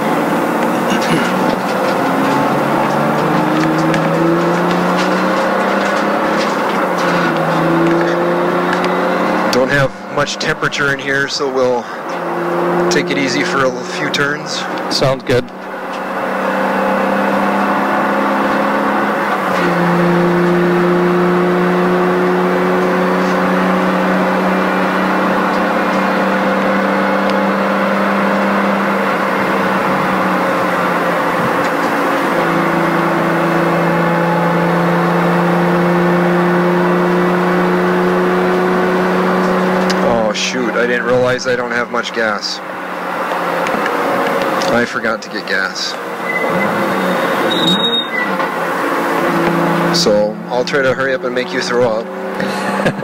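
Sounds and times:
car engine from inside cabin: 0.0 - 53.0.

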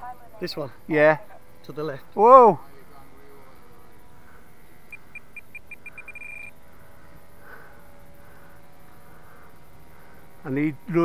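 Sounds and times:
short high beeps: 4.9 - 6.5.

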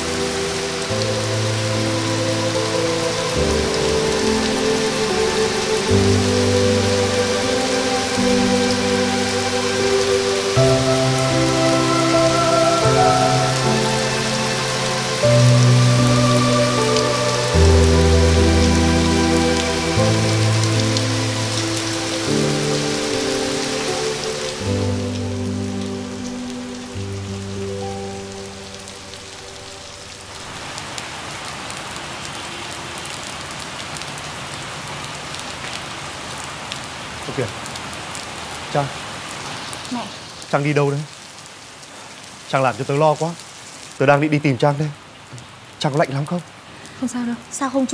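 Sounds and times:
slow music score: 0.0 - 33.8
heavy rain: 0.0 - 47.9.

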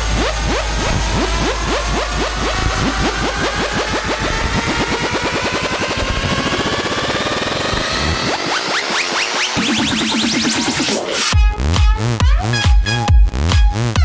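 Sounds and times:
rising synth sweep: 0.0 - 11.8
deep bass: 0.0 - 14.0
electronic dance music: 0.0 - 14.0.

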